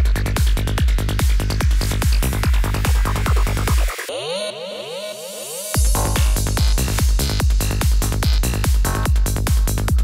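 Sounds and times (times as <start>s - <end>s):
kick drum and bassline: 0.0s - 10.0s.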